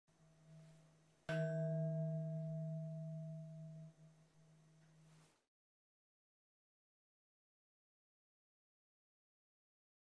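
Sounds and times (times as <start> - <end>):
bell-like chime ringing: 1.3 - 3.9.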